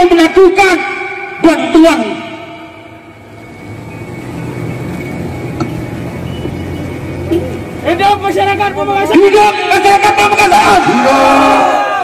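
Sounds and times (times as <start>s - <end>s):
faint steady high tone: 0.9s - 7.6s
vehicle engine idling: 2.4s - 11.4s.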